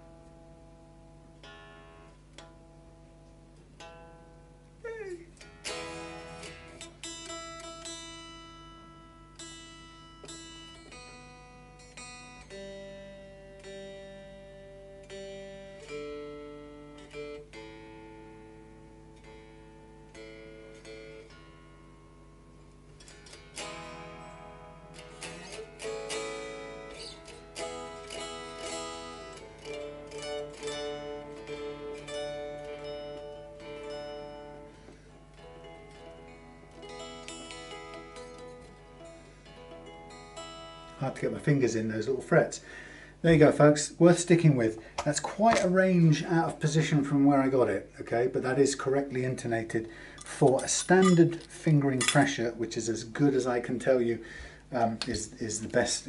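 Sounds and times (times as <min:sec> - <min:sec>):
electric guitar notes picked: 0:00.0 - 0:43.1.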